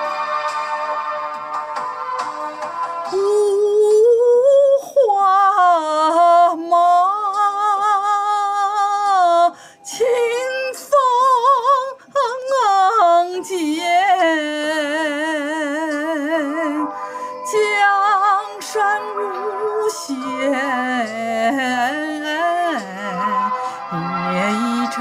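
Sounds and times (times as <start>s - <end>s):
backing music track: 0.0s - 25.0s
person singing with vibrato: 3.0s - 25.0s.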